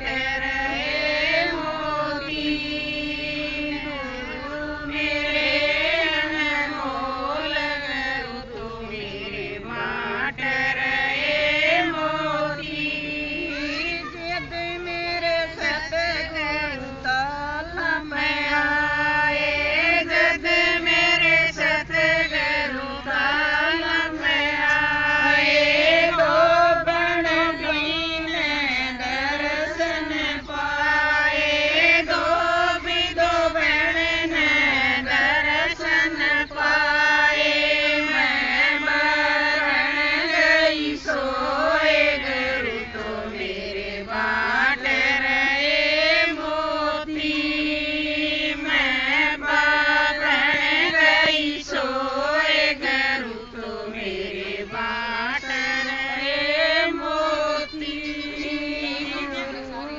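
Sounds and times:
women singing together: 0:00.0 - 0:59.9.

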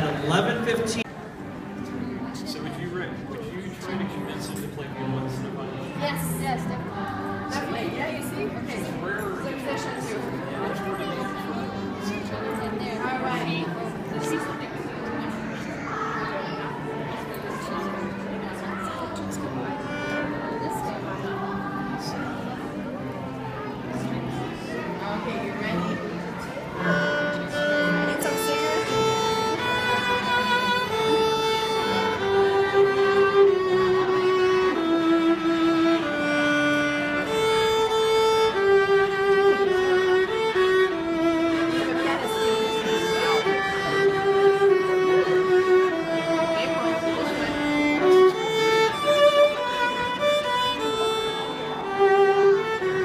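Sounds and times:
solo violin slow melody: 0:03.6 - 0:15.5, 0:16.4 - 0:24.2, 0:24.9 - 0:53.0.

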